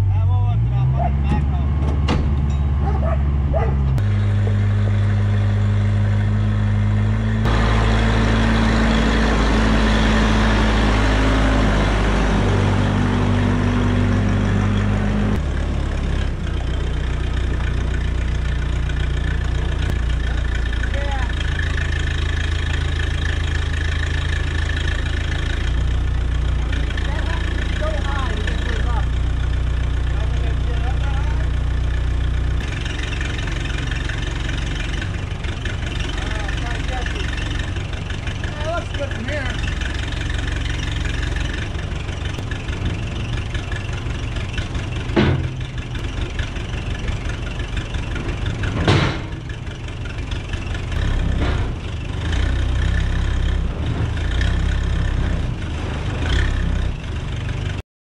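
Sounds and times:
backhoe engine under load: 0.0s - 57.8s
sharp metal bangs: 48.7s - 49.5s.

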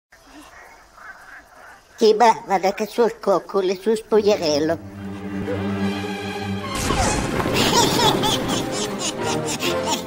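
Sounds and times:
background music: 4.0s - 10.0s.

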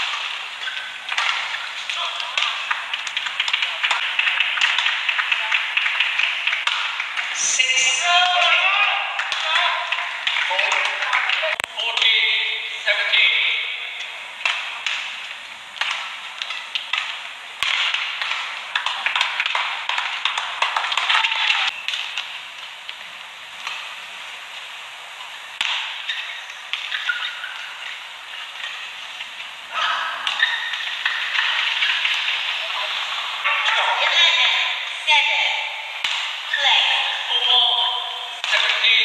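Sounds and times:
shoes squeaking on court: 0.0s - 1.9s, 25.2s - 29.2s, 30.2s - 32.4s
racket striking shuttlecock: 0.0s - 7.0s, 15.8s - 22.0s, 25.6s - 27.6s, 36.0s - 36.3s.

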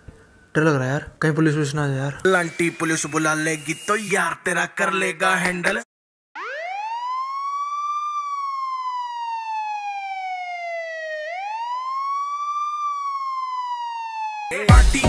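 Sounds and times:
police siren wailing: 2.3s - 4.1s, 6.4s - 14.7s.

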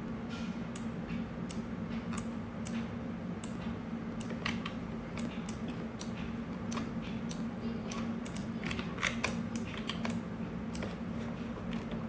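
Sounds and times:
steady low hum: 0.0s - 12.0s
computer mouse and keyboard clicking: 1.5s - 11.0s.

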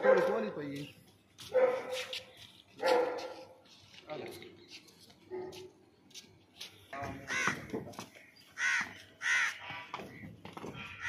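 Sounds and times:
dog barking: 0.0s - 0.5s, 1.5s - 2.2s, 2.8s - 3.6s, 5.3s - 5.7s.

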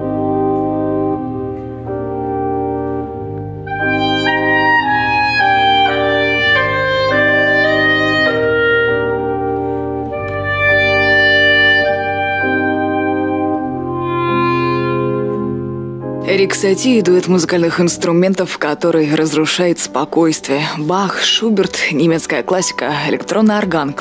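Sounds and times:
clarinet melody: 0.0s - 18.3s
electronic organ chords: 0.0s - 18.4s.

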